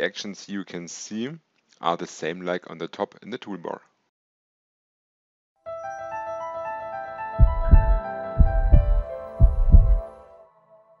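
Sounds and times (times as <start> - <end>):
heartbeat sound effect: 7.4 - 10.0.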